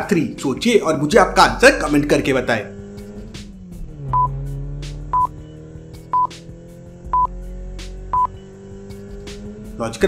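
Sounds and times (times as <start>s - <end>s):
background music: 0.0s - 10.0s
short high electronic beeps: 4.1s - 4.3s, 5.1s - 5.3s, 6.1s - 6.3s, 8.1s - 8.3s.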